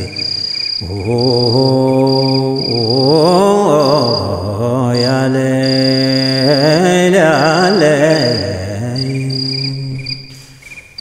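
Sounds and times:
man chanting: 0:00.0 - 0:10.5
cricket-like chirps: 0:00.0 - 0:11.0.

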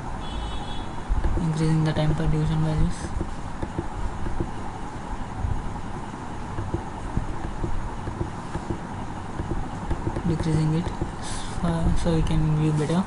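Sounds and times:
faint hum: 0:00.0 - 0:13.0
soft knocks and clicks: 0:03.0 - 0:04.6, 0:06.0 - 0:11.2.

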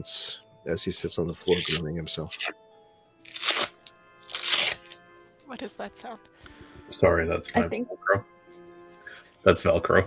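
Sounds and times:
velcro ripping: 0:01.5 - 0:02.6, 0:03.2 - 0:05.1.

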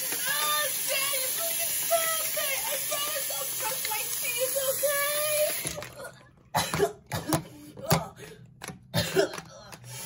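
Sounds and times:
tap running into a sink: 0:00.0 - 0:06.0
person coughing: 0:06.5 - 0:08.0, 0:08.9 - 0:09.6.

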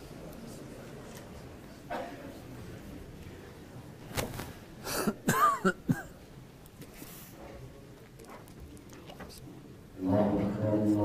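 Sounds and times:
men coughing: 0:04.8 - 0:06.3.

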